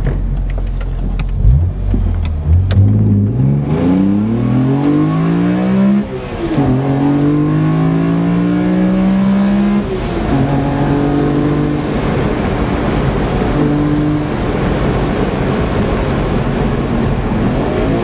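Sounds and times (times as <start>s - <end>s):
car engine accelerating hard: 1.2s - 18.0s.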